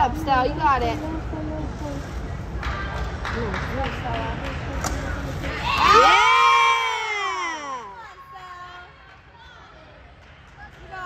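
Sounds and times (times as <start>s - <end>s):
high-pitched cheer: 5.5s - 8.4s.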